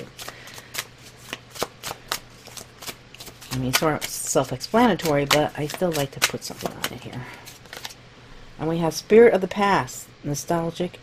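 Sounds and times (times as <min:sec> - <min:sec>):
cards being shuffled: 0:00.0 - 0:08.0.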